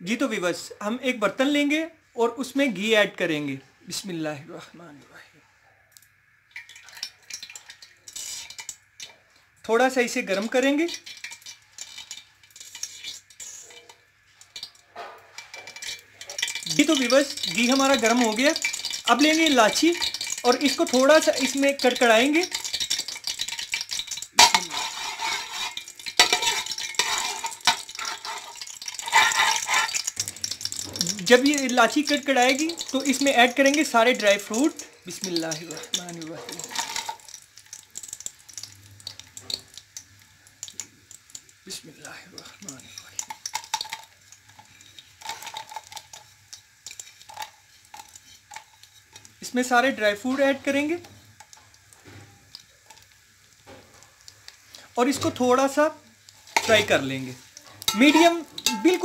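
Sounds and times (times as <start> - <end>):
spices frying in hot oil: 0.0 - 5.2, 5.8 - 59.0
small crackles: 5.8 - 59.0
metal skimmer scraping a pot: 10.4 - 31.7, 34.8 - 37.4, 56.5 - 57.2, 57.8 - 59.0
metal spoon knocking a pot: 57.9 - 59.0.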